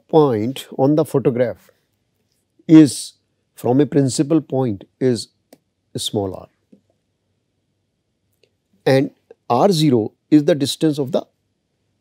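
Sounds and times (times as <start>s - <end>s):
person speaking: 0.0s - 6.9s, 8.6s - 11.4s.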